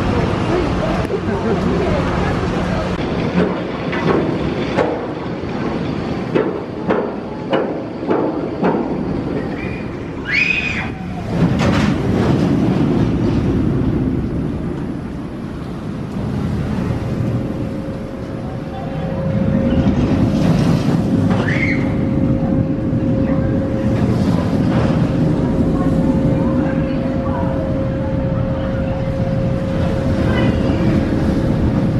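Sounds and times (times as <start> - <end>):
roller coaster rumbling on track: 0.0 - 31.9
steady hum: 0.0 - 31.9.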